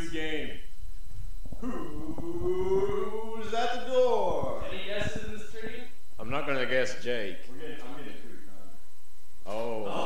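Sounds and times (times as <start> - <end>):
man howling: 1.6 - 3.6, 9.8 - 10.0.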